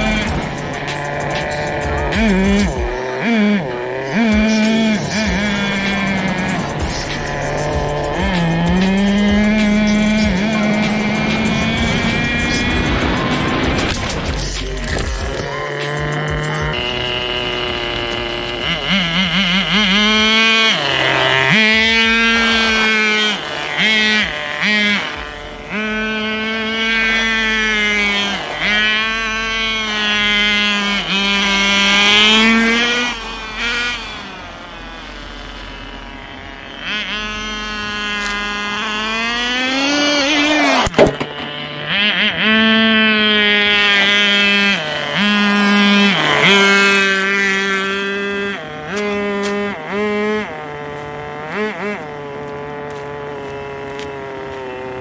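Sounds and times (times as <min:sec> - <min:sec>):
nitro engine revving: 0:00.0 - 0:55.0.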